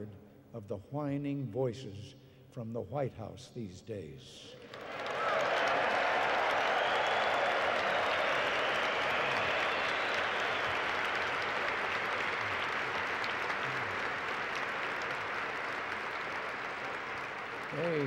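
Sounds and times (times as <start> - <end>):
audience applauding: 4.6 - 18.0.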